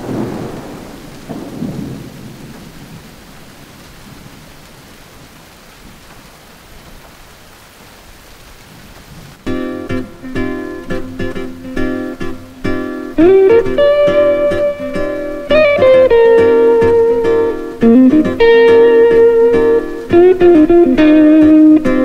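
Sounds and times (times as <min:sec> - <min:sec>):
thunder rumbling: 0:00.0 - 0:06.2, 0:13.1 - 0:21.9
heavy rain: 0:00.0 - 0:22.0
acoustic guitar plucked: 0:09.5 - 0:22.0.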